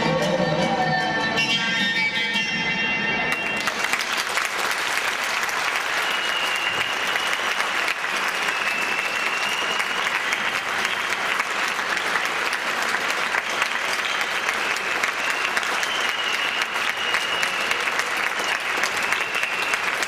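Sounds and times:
audience applauding: 3.3 - 20.0.

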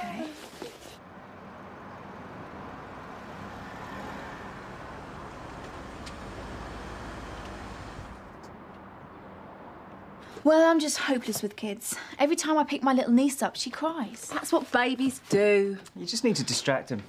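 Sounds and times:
car engine and road noise: 0.0 - 10.7.

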